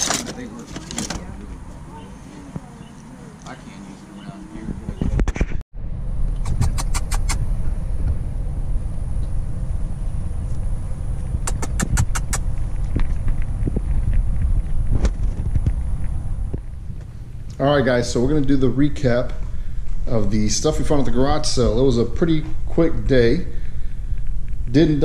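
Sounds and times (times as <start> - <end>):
vehicle rumble from inside cabin: 5.8 - 18.2
quick evenly spaced ticks: 11.4 - 14.8.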